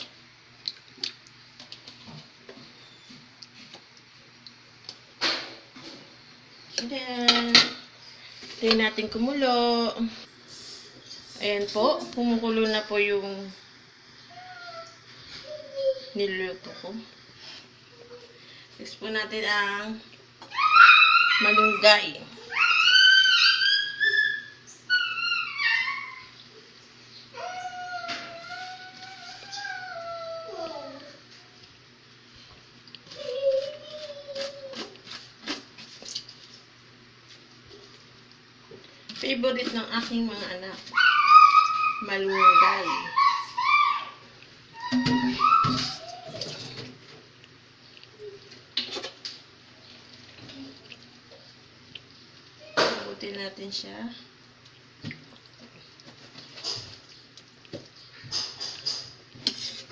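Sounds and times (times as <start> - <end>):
dog whining: 14.3 - 16.1, 20.5 - 26.4, 27.4 - 31.2, 40.9 - 46.8
hand scraping in a pan: 58.4 - 59.9.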